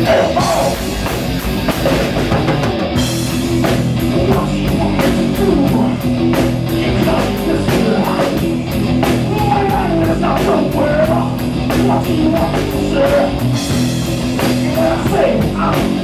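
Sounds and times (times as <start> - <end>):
bass guitar: 0.0 - 16.0
drum kit beat: 0.0 - 16.0
electric guitar: 0.0 - 16.0.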